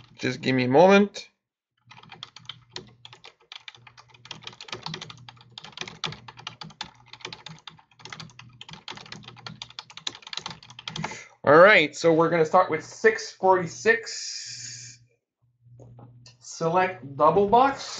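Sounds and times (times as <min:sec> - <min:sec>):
computer keyboard typing: 0:01.8 - 0:11.2
low steady hum: 0:11.9 - 0:17.9.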